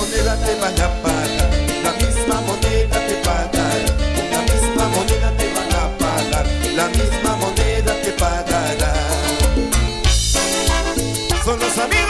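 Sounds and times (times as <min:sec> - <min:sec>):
live salsa band playing: 0:00.0 - 0:12.0.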